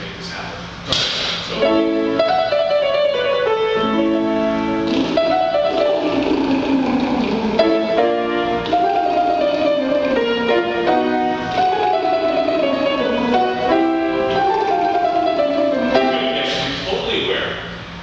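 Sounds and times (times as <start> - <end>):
piano chords: 1.5 - 17.2
tenor singing tongue-trill exercise: 1.6 - 16.8.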